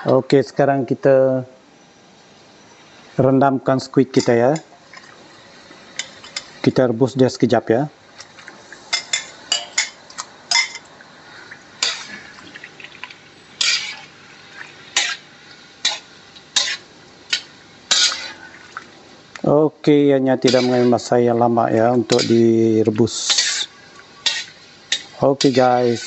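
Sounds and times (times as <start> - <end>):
boiling water bubbling: 10.8 - 15.6, 18.0 - 19.4.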